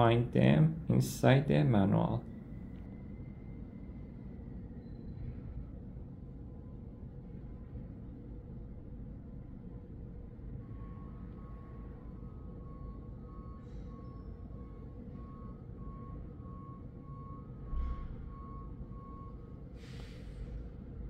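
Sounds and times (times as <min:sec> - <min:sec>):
steady low hum: 0:00.0 - 0:21.0
faint electronic beeping: 0:10.5 - 0:19.7.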